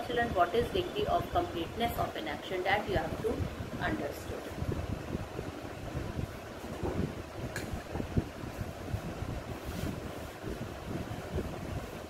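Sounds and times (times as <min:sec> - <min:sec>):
rumbling buffeting on microphone: 0:00.0 - 0:12.0.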